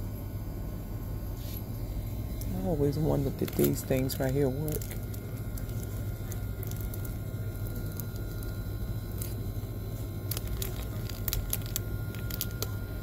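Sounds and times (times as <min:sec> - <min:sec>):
low shop hum: 0:00.0 - 0:13.0
plastic packaging crackling: 0:02.3 - 0:13.0.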